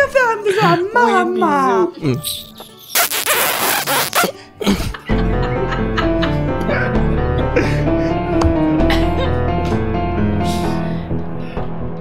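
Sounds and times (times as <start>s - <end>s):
wet kissing sound: 2.2s - 4.4s.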